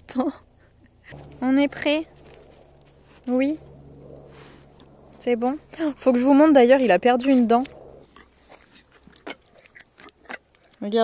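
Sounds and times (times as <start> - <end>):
horse lips clicking and smacking: 6.7 - 11.0.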